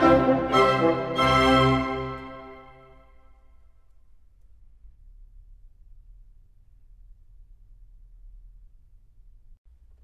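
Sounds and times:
low steady background rumble: 0:03.5 - 0:10.0.

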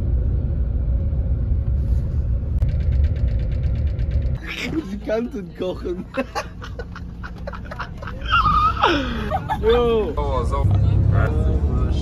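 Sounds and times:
bus engine and road rumble: 0:00.0 - 0:12.0.

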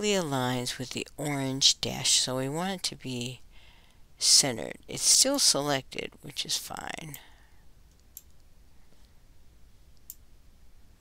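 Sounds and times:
low steady hum: 0:00.0 - 0:11.0
computer mouse clicks: 0:07.9 - 0:08.5.

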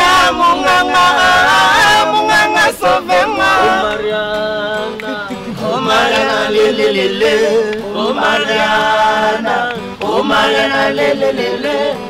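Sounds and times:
man singing chant-like song: 0:00.0 - 0:12.0.

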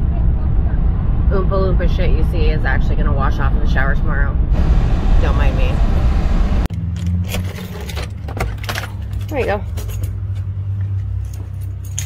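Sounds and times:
keys jingling: 0:07.0 - 0:12.0.

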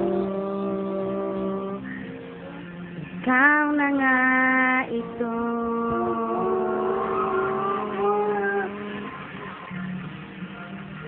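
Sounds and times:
child singing long notes: 0:00.0 - 0:02.0, 0:03.3 - 0:09.1
pop ballad backing music: 0:00.0 - 0:11.0.

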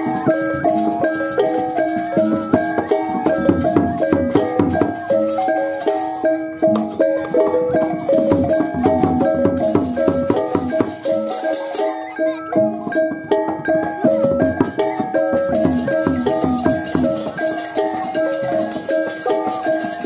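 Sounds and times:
drums: 0:00.0 - 0:20.0
metallophones ringing: 0:00.0 - 0:20.0
small cymbals clashing: 0:00.0 - 0:20.0.

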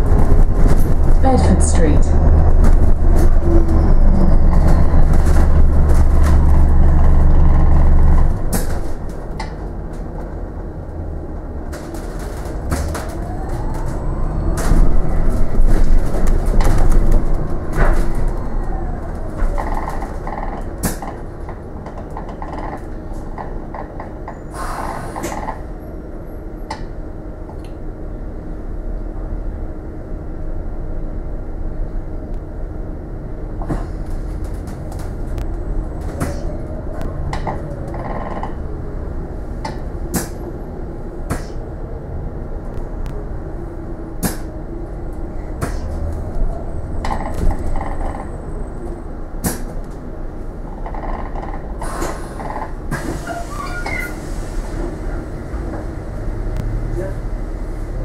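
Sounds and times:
bus rumbling: 0:00.0 - 0:58.0
rattles from bus fittings: 0:02.5 - 0:10.4, 0:14.5 - 0:25.7, 0:37.2 - 0:38.7, 0:39.6 - 0:40.6, 0:49.4 - 0:50.1, 0:50.7 - 0:55.9.

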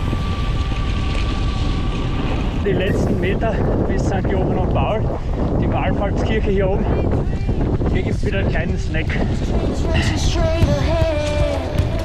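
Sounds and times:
bike tires rumbling on dirt trail: 0:00.0 - 0:12.0
wind buffeting microphone: 0:00.0 - 0:12.0.

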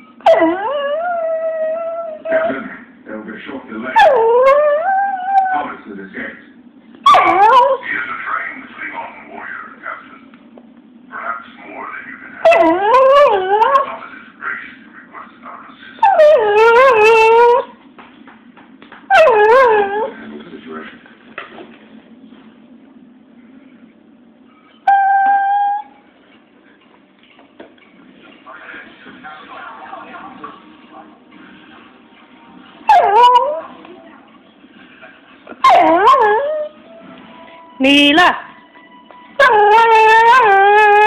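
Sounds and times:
dog whining howl-like: 0:00.2 - 0:02.5, 0:04.0 - 0:05.7, 0:07.1 - 0:07.8, 0:12.4 - 0:13.9, 0:16.0 - 0:17.7, 0:19.1 - 0:20.1, 0:24.8 - 0:26.0, 0:32.9 - 0:33.7, 0:35.6 - 0:36.8, 0:39.4 - 0:41.0.

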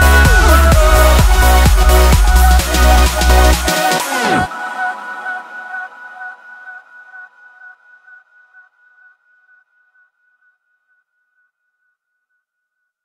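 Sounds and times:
electronic dance music: 0:00.0 - 0:08.6.

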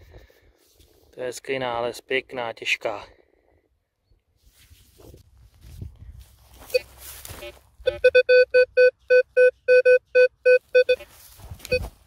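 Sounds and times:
metal detector beeping: 0:06.6 - 0:12.0.

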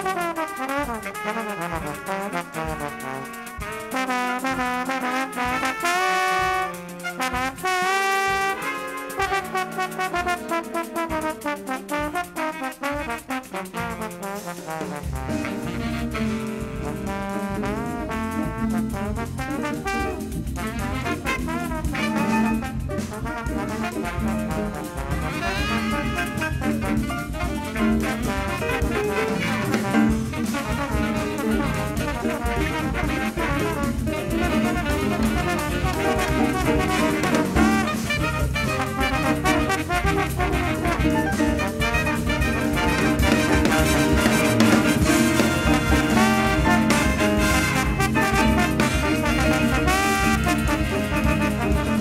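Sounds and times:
big band playing samba-jazz: 0:00.0 - 0:52.0.

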